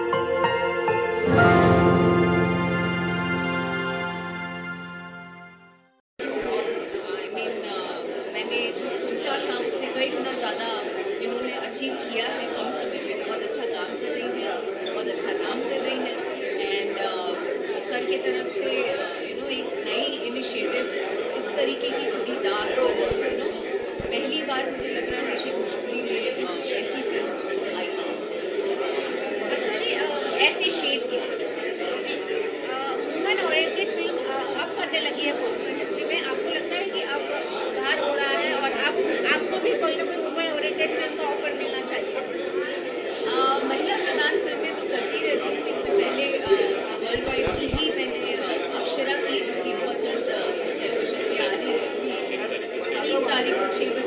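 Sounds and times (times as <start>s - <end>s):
crowd chatter: 0.0s - 5.5s, 6.2s - 54.0s
people talking at once: 6.2s - 54.0s.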